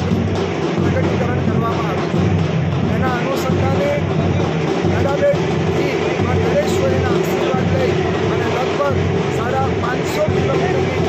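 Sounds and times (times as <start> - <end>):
loud background noise: 0.0 - 11.0
man speaking: 0.8 - 2.2, 2.8 - 11.0.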